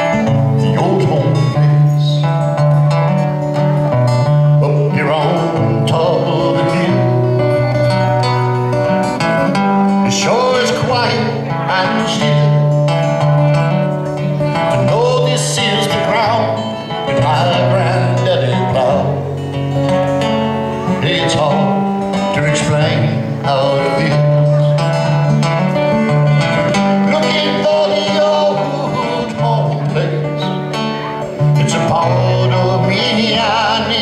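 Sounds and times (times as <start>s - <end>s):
acoustic guitar country song: 0.0s - 34.0s.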